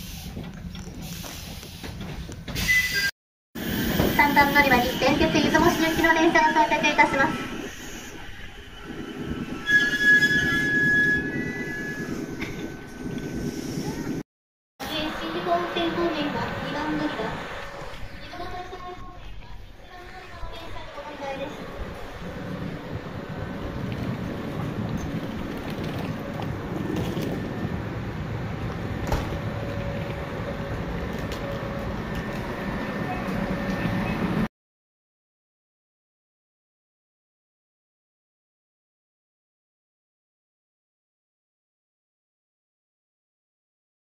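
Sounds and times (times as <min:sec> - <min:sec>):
train wheels squealing on rails: 0:02.5 - 0:03.1, 0:03.7 - 0:14.2
low rumble of train running: 0:03.6 - 0:14.2, 0:14.8 - 0:34.5.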